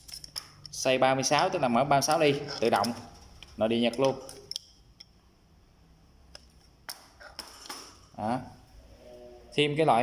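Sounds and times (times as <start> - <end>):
metal wrench clicks and clinks: 0.0 - 0.8, 3.9 - 5.2.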